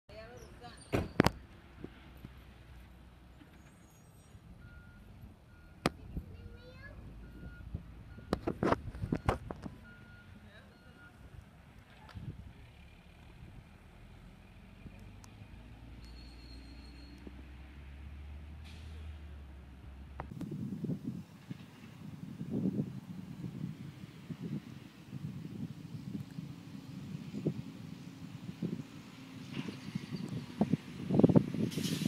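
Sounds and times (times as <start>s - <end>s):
truck engine rumble: 0.1s - 32.0s.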